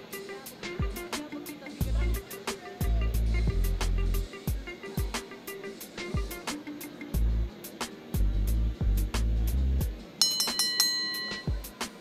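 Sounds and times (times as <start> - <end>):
backing music with a beat: 0.0 - 12.0
bright ringing chime: 10.2 - 11.8.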